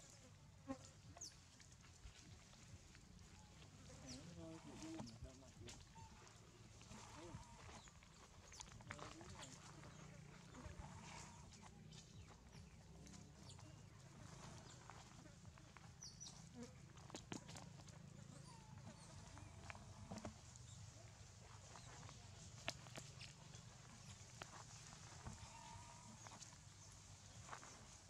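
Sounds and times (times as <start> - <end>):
dry leaves crackling: 1.2 - 28.0.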